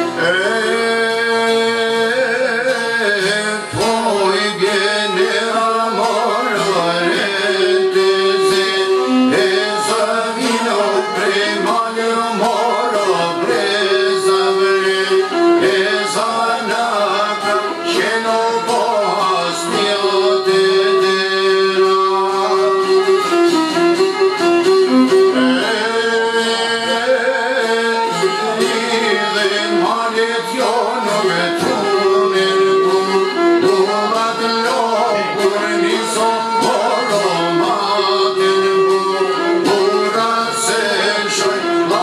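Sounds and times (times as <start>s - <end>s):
man singing: 0.0s - 42.0s
plucked lute: 0.0s - 42.0s
violin long notes: 0.0s - 42.0s.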